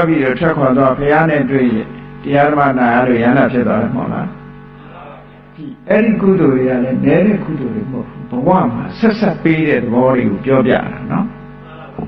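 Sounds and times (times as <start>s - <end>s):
monk chanting sermon: 0.0s - 12.0s.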